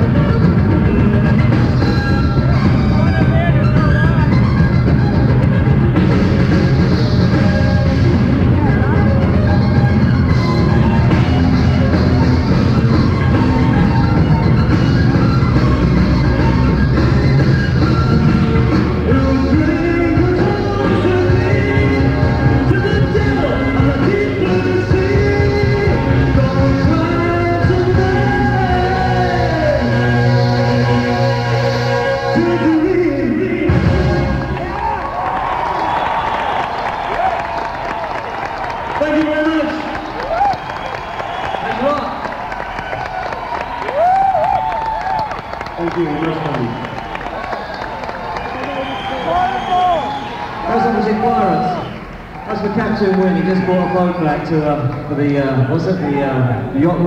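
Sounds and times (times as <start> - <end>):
held keyboard notes: 0.0 - 34.7
rock band playing: 0.0 - 54.7
audience cheering and applauding: 0.9 - 27.7, 33.9 - 56.4
wavering whoop: 34.6 - 38.8, 40.2 - 45.7, 46.8 - 52.0.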